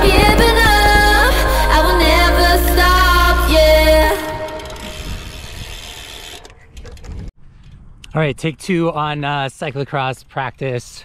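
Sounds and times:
music: 0.0 - 4.6
bicycle chain clicking: 4.2 - 7.2.

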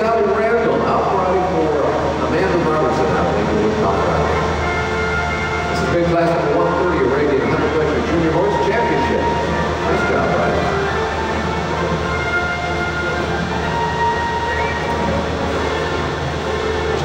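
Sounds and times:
dense wash of indistinct sound: 0.0 - 17.0.

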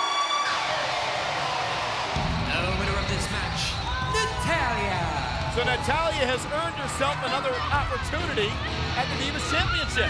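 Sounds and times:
arena crowd cheering: 0.0 - 10.0
entrance music with low beat: 2.2 - 10.0.

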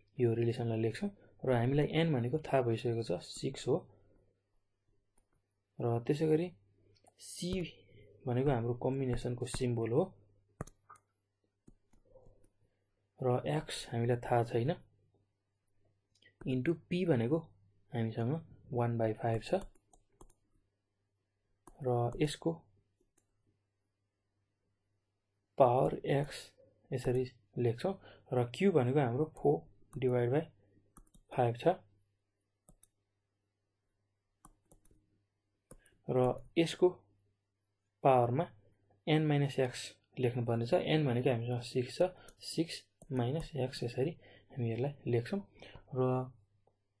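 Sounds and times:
stylus tapping on touchscreen: 10.5 - 12.5
stylus tapping a tablet: 10.6 - 11.1.

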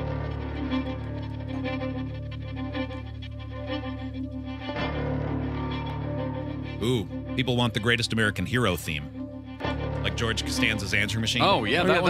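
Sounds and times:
instrumental music with bass line: 0.0 - 12.0.

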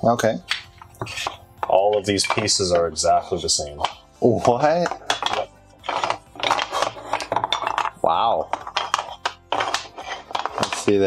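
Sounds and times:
wooden puzzle pieces clacking: 4.8 - 11.0.

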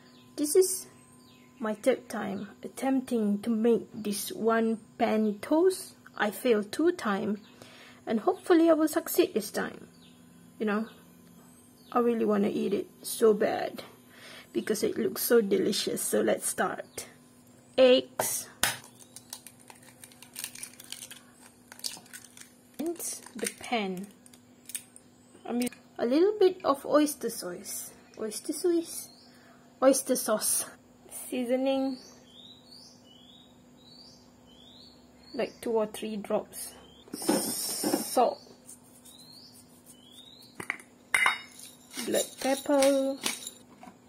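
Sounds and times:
faint steady hum: 0.0 - 44.0
eggshell crackling: 18.8 - 25.0.

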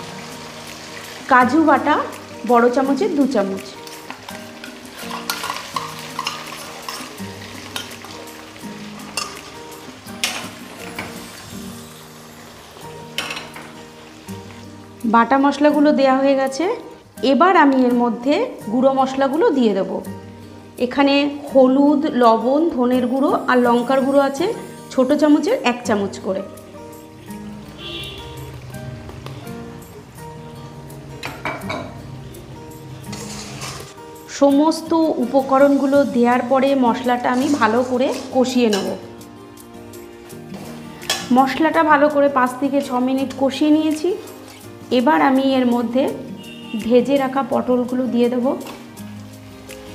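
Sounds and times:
spice paste sizzling in oil: 0.0 - 31.0, 32.2 - 49.9
background music with held notes: 0.0 - 49.9.

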